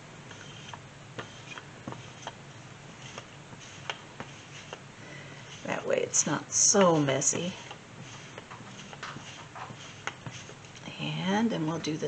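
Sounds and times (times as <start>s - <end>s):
lint roller ticking on fabric: 0.3s - 12.0s.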